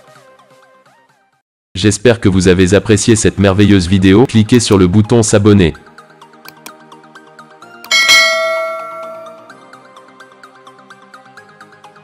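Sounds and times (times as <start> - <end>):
notification bell chime: 7.9 - 9.6.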